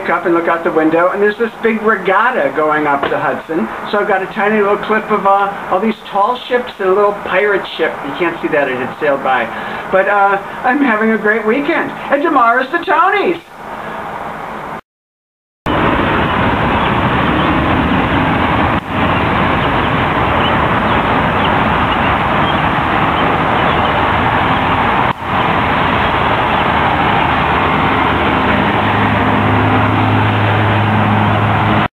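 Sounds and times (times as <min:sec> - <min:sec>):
road traffic rushing: 0:00.0 - 0:14.8, 0:15.7 - 0:31.9
low engine hum: 0:15.7 - 0:31.9.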